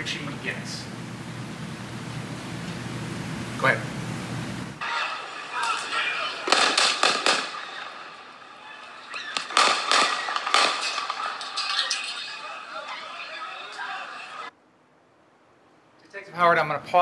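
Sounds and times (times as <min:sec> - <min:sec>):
people's voices: 0:04.8 - 0:06.8, 0:08.6 - 0:14.5
gunshots: 0:04.8 - 0:08.3, 0:09.1 - 0:12.1.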